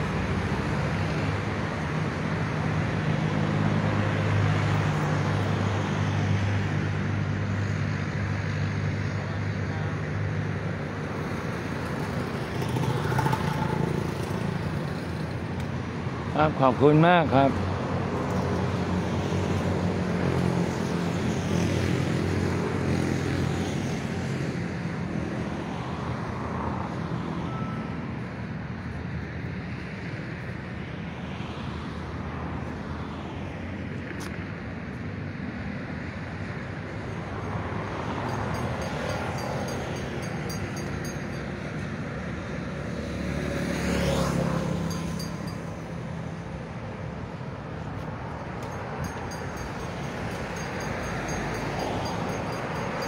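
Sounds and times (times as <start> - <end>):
road traffic passing: 0.0 - 53.0.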